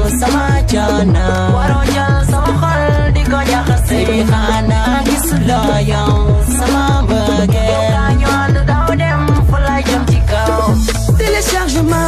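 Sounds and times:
afro-pop hip-hop music: 0:00.0 - 0:12.0
deep sliding bass: 0:00.0 - 0:12.0.

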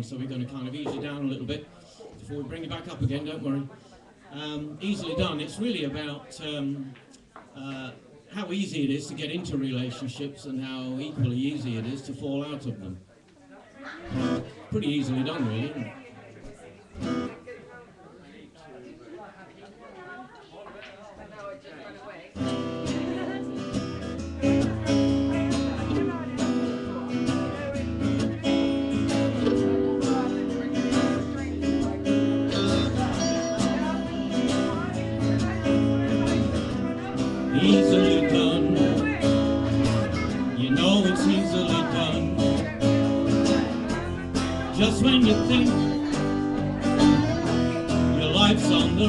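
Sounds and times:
live band playing slow song: 0:22.4 - 0:49.0
person singing: 0:37.1 - 0:49.0.

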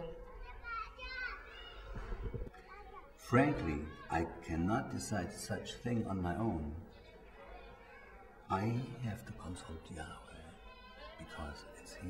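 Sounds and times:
faint high-pitched voices: 0:00.0 - 0:12.0.

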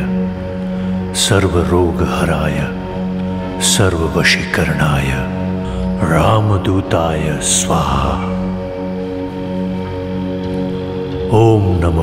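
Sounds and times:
sustained drone: 0:00.0 - 0:12.0.

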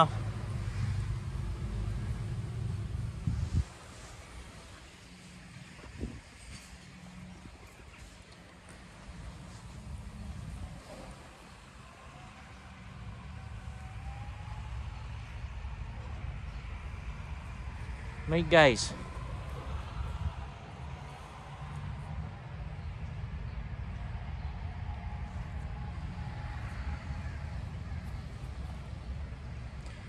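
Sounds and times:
road traffic rumble: 0:00.0 - 0:30.0.

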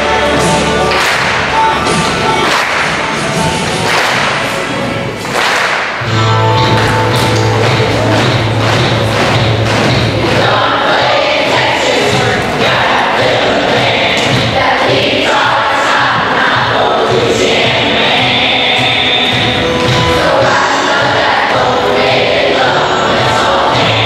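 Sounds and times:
children's choir singing: 0:00.0 - 0:05.7, 0:06.6 - 0:24.0
rhythmic thump: 0:00.2 - 0:24.0
instrumental music: 0:06.0 - 0:15.1.

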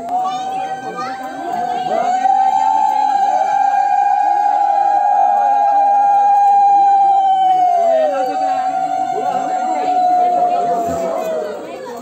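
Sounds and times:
adults and children talking: 0:00.0 - 0:12.0.

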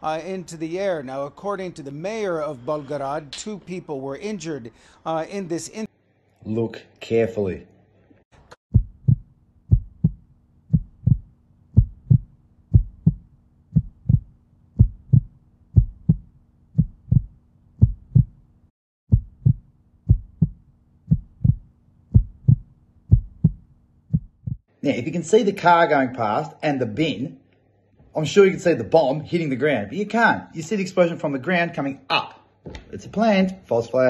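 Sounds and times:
heartbeat thumps: 0:08.7 - 0:18.4, 0:19.1 - 0:24.6.

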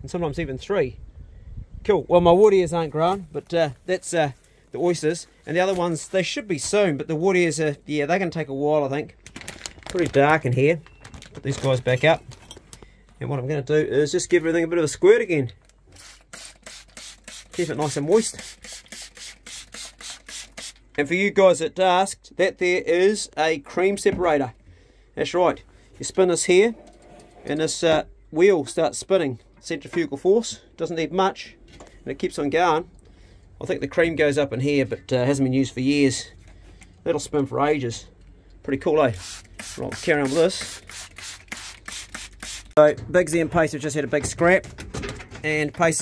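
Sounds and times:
man speaking: 0:01.9 - 0:09.1, 0:17.6 - 0:18.4, 0:39.8 - 0:40.8, 0:42.8 - 0:44.7, 0:45.4 - 0:46.0
spray bottle squirting: 0:15.9 - 0:20.9, 0:39.2 - 0:42.8.

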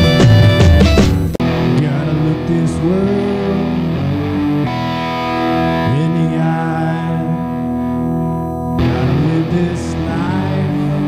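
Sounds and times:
distorted electric guitar: 0:00.0 - 0:11.0.

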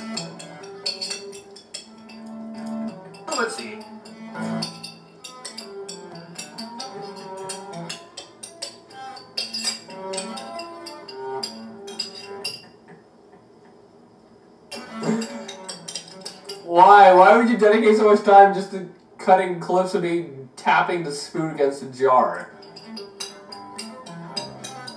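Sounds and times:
spoon clinking glass jar music: 0:00.0 - 0:12.8, 0:14.7 - 0:16.9, 0:22.4 - 0:24.9.

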